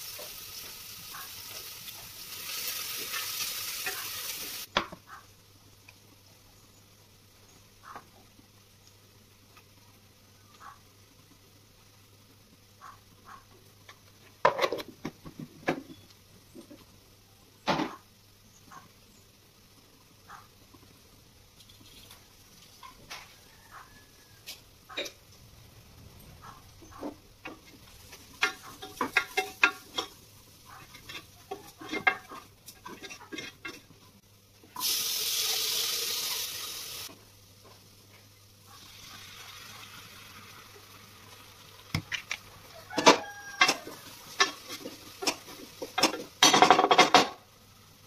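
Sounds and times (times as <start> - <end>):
vegetables sizzling in hot oil: 0.0 - 4.9, 18.1 - 25.8, 26.5 - 48.0
dishes and utensils clattering: 26.9 - 33.9, 43.0 - 47.4.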